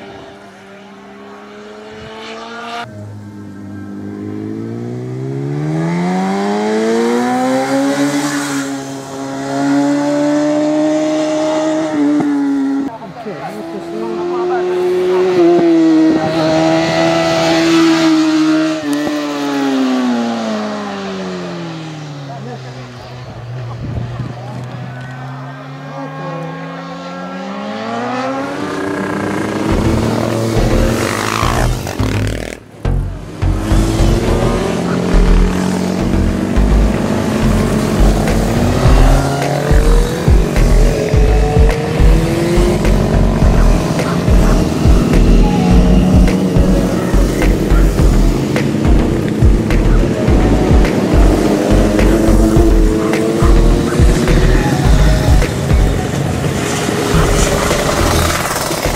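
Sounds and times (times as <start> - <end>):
motorcycle engine at high revs: 3.6 - 23.2, 27.3 - 58.9
dense pulsing beat: 29.6 - 32.2, 32.8 - 56.1, 57.2 - 58.9.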